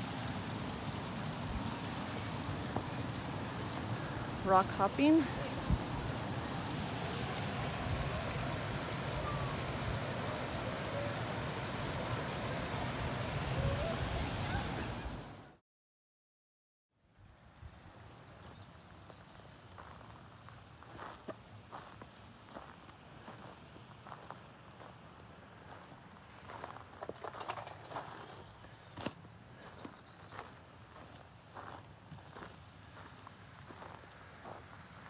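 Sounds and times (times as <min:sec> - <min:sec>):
stream flowing over rocks: 0:00.0 - 0:15.4.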